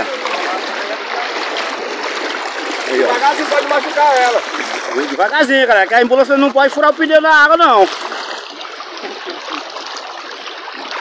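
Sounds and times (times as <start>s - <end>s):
floodwater sloshing: 0.0s - 11.0s
splashes of wading: 0.0s - 11.0s.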